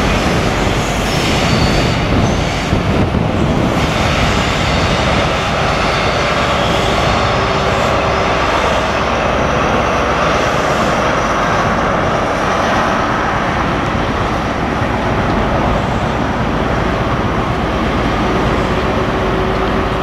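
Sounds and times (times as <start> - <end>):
diesel train engine: 0.0 - 20.0.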